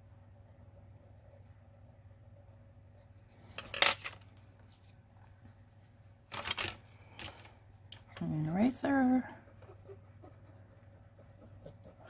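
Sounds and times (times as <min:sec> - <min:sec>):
paper rustling: 0:05.8 - 0:07.6.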